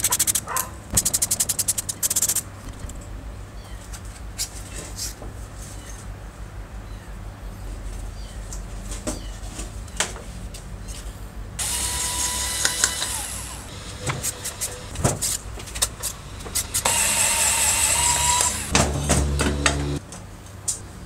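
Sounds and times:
electric screwdriver whining: 11.6 - 20.0.

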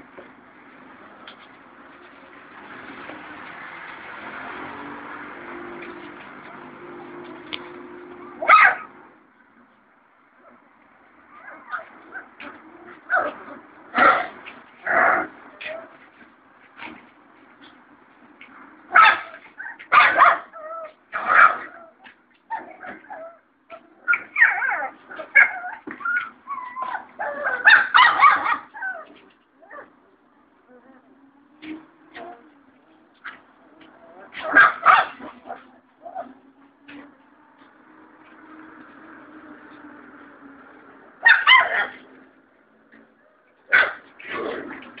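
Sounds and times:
puppies whining: 11.3 - 13.4, 21.7 - 30.0
puppies yelping: 11.3 - 14.3, 19.0 - 30.0, 41.2 - 42.0.

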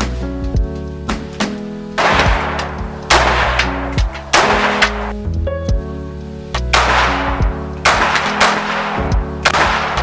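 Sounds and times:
background music: 0.0 - 10.0
rifle gunshots with echo: 2.0 - 5.1, 6.7 - 10.0.

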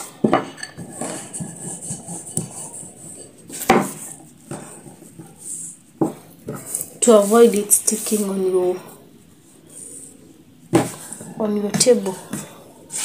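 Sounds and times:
rolling pin rolling dough: 0.0 - 13.0
wood knocking on tabletop: 3.7 - 4.6.

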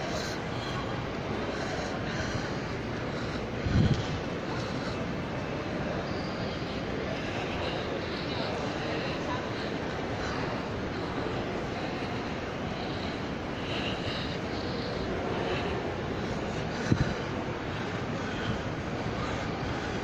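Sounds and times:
ventilation noise: 0.0 - 20.0.

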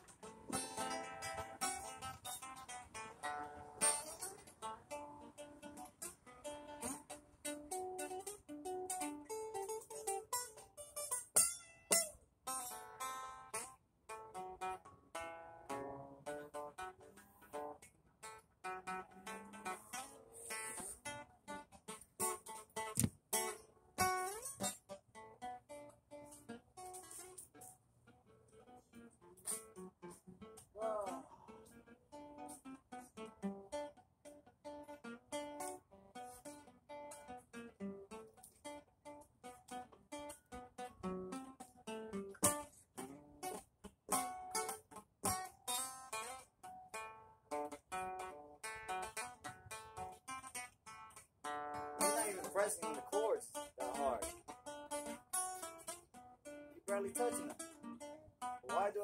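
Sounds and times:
acoustic guitar strummed and picked: 0.0 - 59.0.

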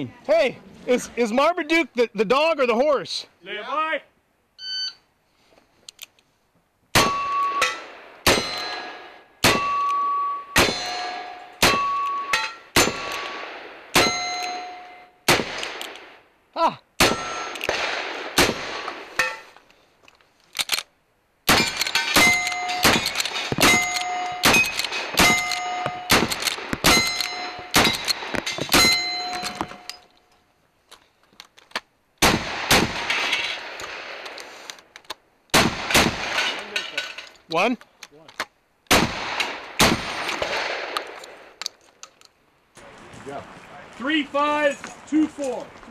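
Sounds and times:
gunshots: 6.9 - 16.2, 17.0 - 19.2, 21.5 - 29.9, 32.2 - 34.4, 35.5 - 36.8, 38.9 - 41.6
steel target clanging: 7.0 - 13.4, 14.0 - 15.2, 17.0 - 17.7, 21.5 - 30.1.

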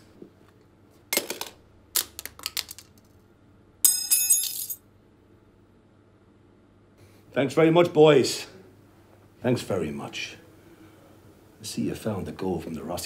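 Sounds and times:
weapons clattering on tiled floor: 1.1 - 3.2, 3.9 - 4.8.

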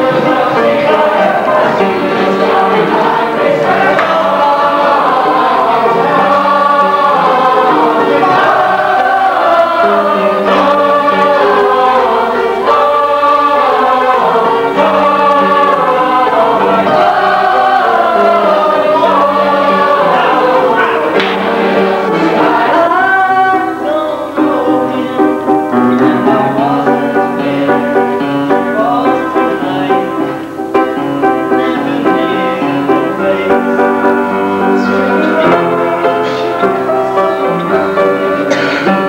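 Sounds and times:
chorus singing long notes: 0.0 - 39.0.

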